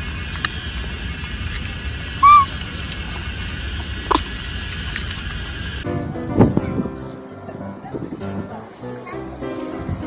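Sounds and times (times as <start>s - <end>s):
baby monkey coo call: 2.2s - 2.6s.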